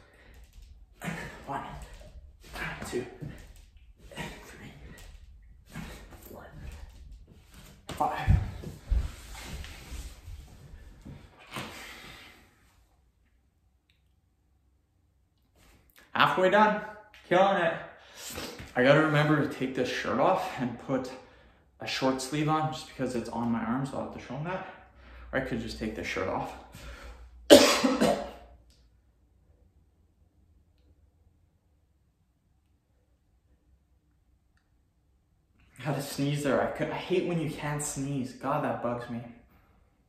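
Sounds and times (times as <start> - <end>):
breathing: 0.0 - 0.8, 11.2 - 12.7, 21.1 - 21.8, 24.6 - 25.4, 26.6 - 27.4
clothing rustle: 0.2 - 12.3
man coughing: 1.0 - 5.0, 27.5 - 28.5.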